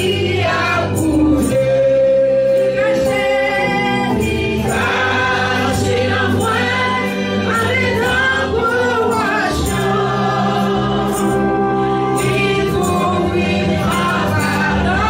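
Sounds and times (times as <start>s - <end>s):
group singing gospel: 0.0s - 15.0s
keyboard: 0.0s - 15.0s.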